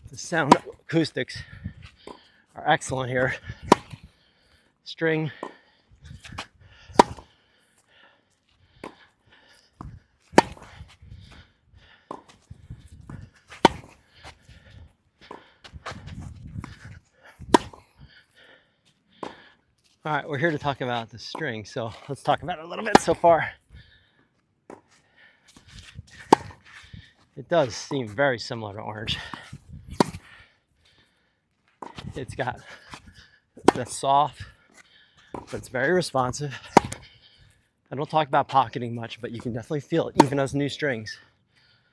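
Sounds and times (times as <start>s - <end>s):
distant tennis hits and bounces: 0.4s - 0.8s, 2.0s - 2.3s, 3.6s - 4.0s, 5.4s - 5.6s, 6.9s - 7.4s, 8.8s - 9.0s, 9.8s - 10.7s, 12.0s - 12.5s, 13.1s - 14.0s, 17.5s - 17.9s, 19.2s - 19.5s, 22.8s - 23.4s, 24.6s - 25.0s, 26.2s - 26.8s, 29.1s - 30.3s, 31.8s - 34.0s, 34.7s - 37.1s, 39.4s - 40.5s
racket striking tennis ball: 0.4s - 0.8s, 3.6s - 4.0s, 7.0s - 7.3s, 9.8s - 10.8s, 13.5s - 14.0s, 17.5s - 17.9s, 22.8s - 23.3s, 26.2s - 26.8s, 29.4s - 30.3s, 33.6s - 34.0s, 35.3s - 35.7s, 36.6s - 37.1s, 40.2s - 40.4s.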